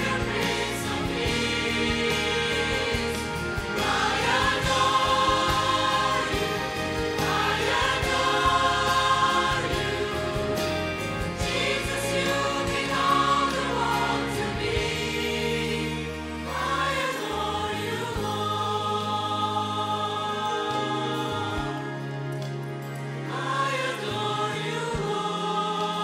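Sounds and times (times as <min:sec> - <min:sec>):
church choir singing a hymn: 0:00.0 - 0:26.0.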